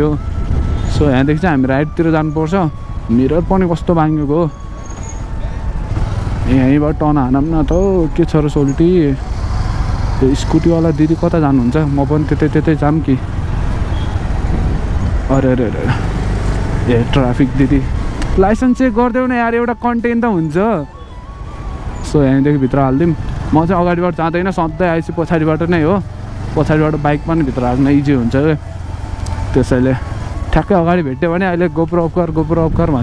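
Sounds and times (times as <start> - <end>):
motorbike engine rumble: 0.0 - 33.0
wind noise on microphone: 0.2 - 1.2, 13.9 - 15.3
man talking: 0.9 - 4.6, 6.4 - 9.3, 10.2 - 13.3, 15.2 - 16.2, 16.8 - 20.9, 22.0 - 28.6, 29.5 - 33.0.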